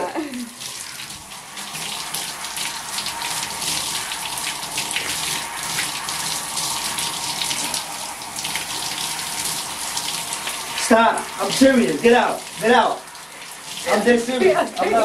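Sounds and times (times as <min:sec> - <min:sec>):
shower head spraying water: 0:00.0 - 0:15.0.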